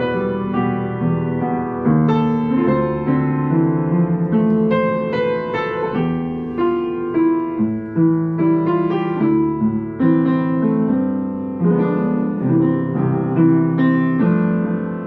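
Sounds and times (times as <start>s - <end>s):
upright piano playing chords: 0.0s - 15.0s.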